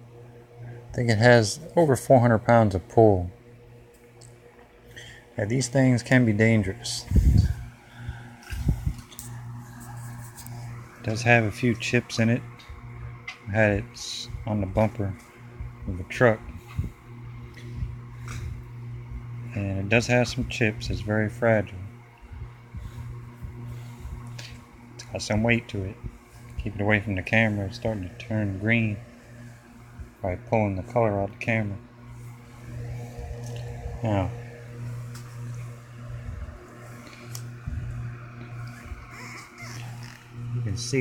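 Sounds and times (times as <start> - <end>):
steady low hum: 0.0 - 41.0.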